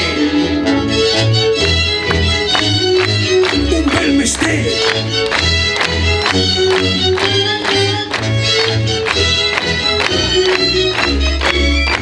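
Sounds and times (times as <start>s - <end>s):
violins playing melody: 0.0s - 12.0s
bass notes pulse: 1.2s - 12.0s.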